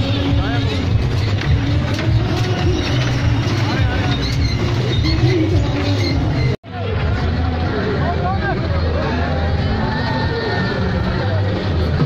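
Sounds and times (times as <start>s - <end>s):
toy cars rolling on rail track: 0.0s - 6.2s
crowd chatter: 0.0s - 12.0s.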